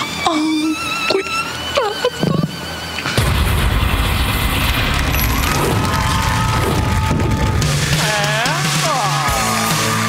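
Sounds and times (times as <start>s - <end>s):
light background music: 0.0s - 4.2s
bass-heavy tv transition sting: 3.2s - 7.9s.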